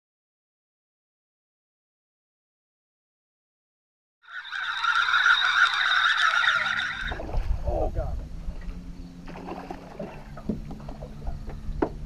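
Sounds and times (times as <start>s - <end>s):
rushing water with high whine: 4.3s - 11.2s
boat motor humming: 4.3s - 12.0s.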